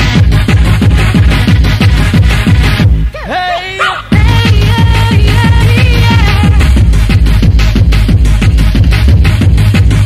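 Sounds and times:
hardcore dance music: 0.0 - 10.0.

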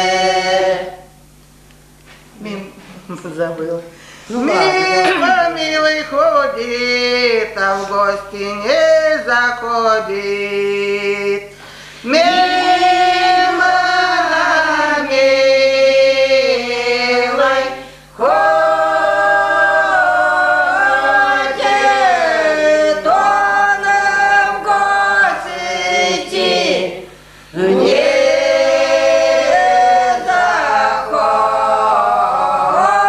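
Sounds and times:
women singing a cappella: 0.0 - 1.1, 12.1 - 33.0.

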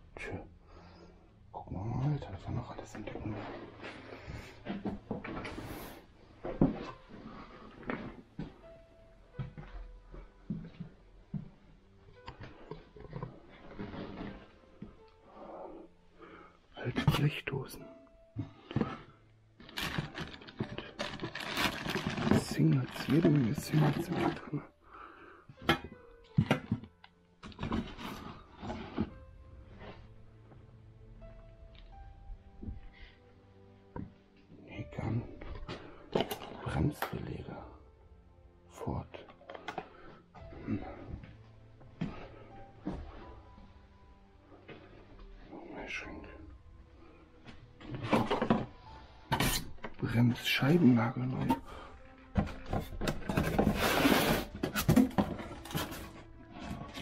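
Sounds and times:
rustling of box contents: 18.7 - 24.5, 26.3 - 30.0, 52.4 - 57.0
cardboard rustle: 19.6 - 24.5.

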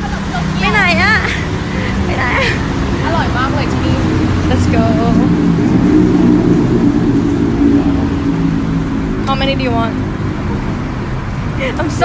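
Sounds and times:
road traffic rumble: 0.0 - 12.0
voices nearby: 0.0 - 12.0.

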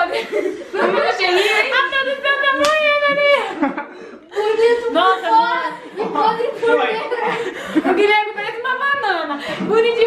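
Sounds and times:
people laughing and chattering: 0.0 - 10.0.

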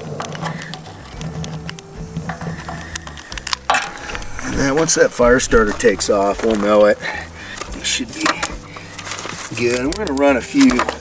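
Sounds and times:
background music: 0.0 - 11.0
fire crackling in wood stove: 0.0 - 11.0.

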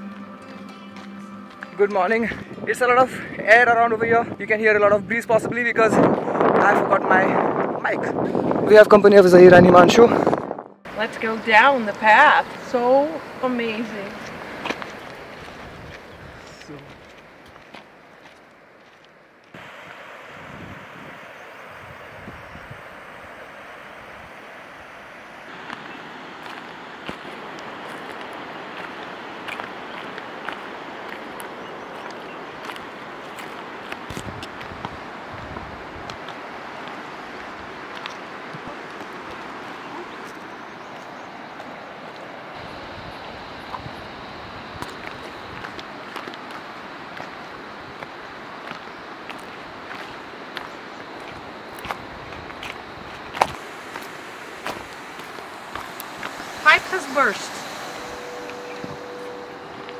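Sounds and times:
wind buffeting microphone: 2.2 - 17.8, 19.5 - 59.9.

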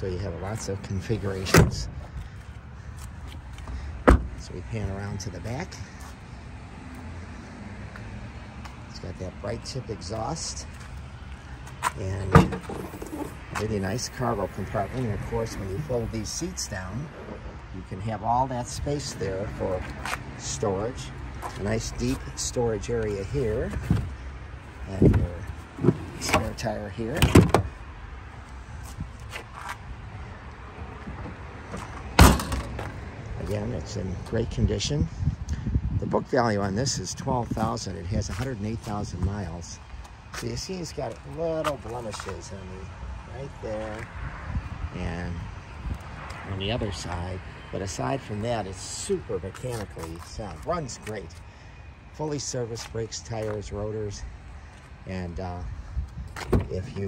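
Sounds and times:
car liftgate slamming: 12.3 - 13.3, 32.2 - 32.9.

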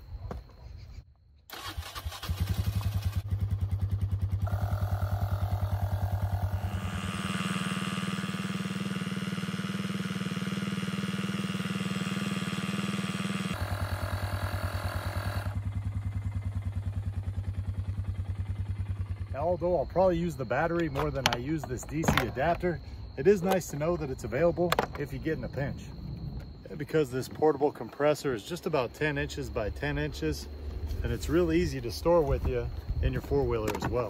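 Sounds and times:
engine starting and idling: 1.5 - 18.6
tire inflator compressor running: 1.6 - 23.6.

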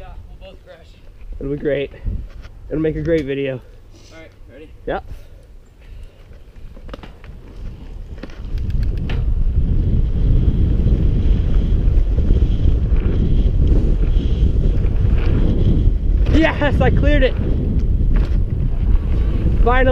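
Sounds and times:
wind buffeting microphone: 0.0 - 3.6, 4.7 - 19.9.

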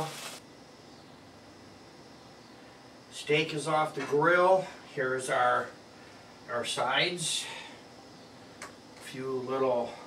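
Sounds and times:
mushrooms sizzling in a pan: 0.0 - 0.4
faint room tone hiss: 0.0 - 10.0.

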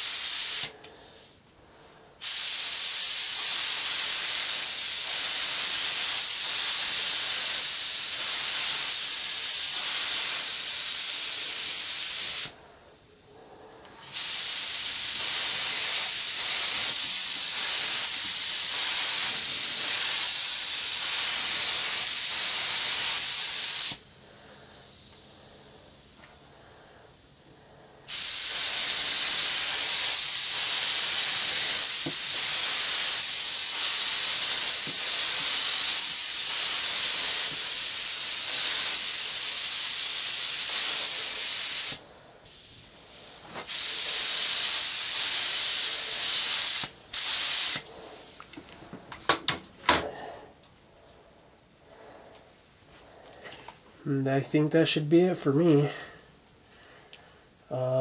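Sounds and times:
air spray gun hissing: 0.0 - 1.4, 2.1 - 48.6.

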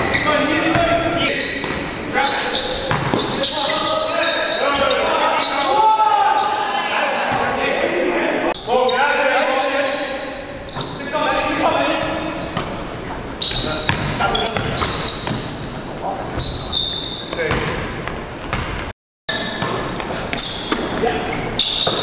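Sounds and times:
players calling out: 0.0 - 17.6
basketball bouncing on hardwood: 2.9 - 3.3.

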